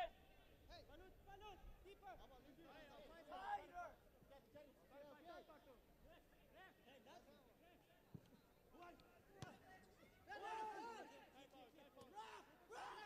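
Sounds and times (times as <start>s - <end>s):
faint crowd shouting: 8.7s - 13.0s.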